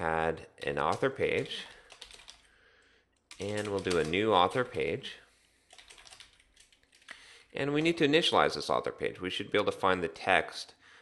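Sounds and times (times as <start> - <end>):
faint keyboard typing: 0.6 - 5.0, 5.7 - 8.0.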